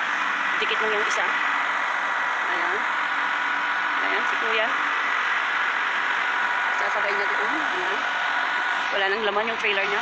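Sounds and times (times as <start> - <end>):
faint whining tones: 0.0 - 10.0.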